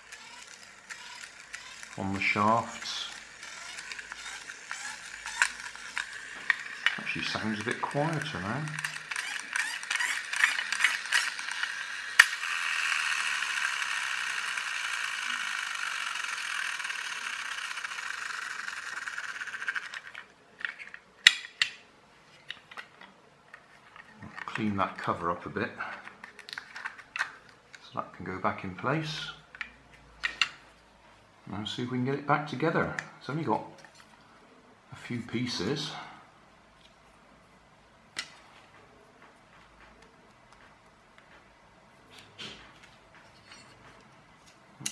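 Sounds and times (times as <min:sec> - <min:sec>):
flywheel whirring: 0:00.0 - 0:20.9
toy car gears clicking: 0:00.0 - 0:21.8, 0:25.8 - 0:27.8.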